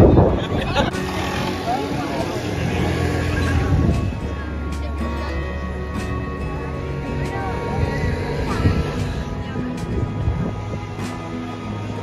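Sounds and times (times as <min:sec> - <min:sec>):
motor scooter engine hum: 0:00.0 - 0:12.0
people chattering: 0:00.0 - 0:12.0.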